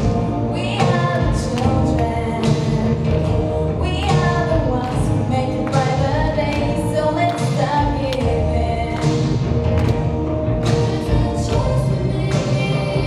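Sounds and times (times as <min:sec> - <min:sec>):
group singing with band: 0:10.8 - 0:13.0.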